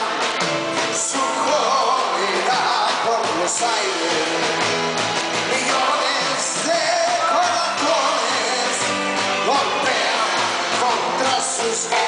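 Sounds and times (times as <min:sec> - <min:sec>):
live band playing pop song: 0:00.0 - 0:12.0
person singing: 0:00.0 - 0:12.0.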